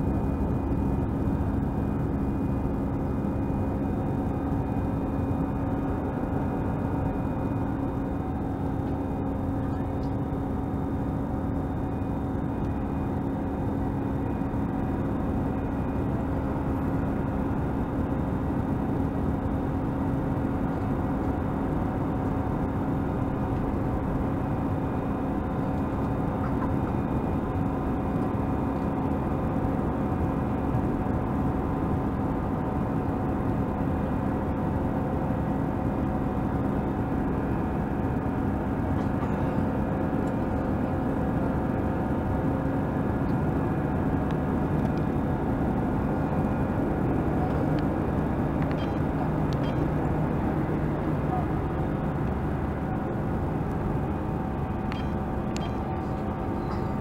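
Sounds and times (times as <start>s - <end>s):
airplane cabin engine noise: 0.0s - 57.0s
constant low hum: 0.0s - 57.0s.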